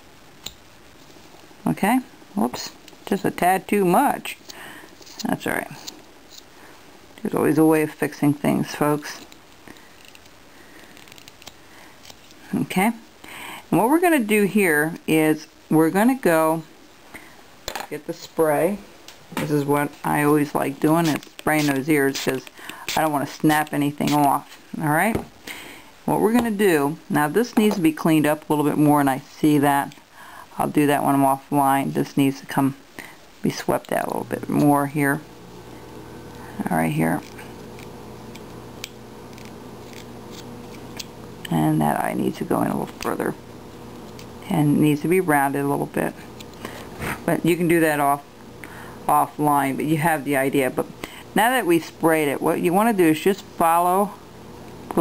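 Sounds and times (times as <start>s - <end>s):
knife scraping wood: 39.3s - 41.1s.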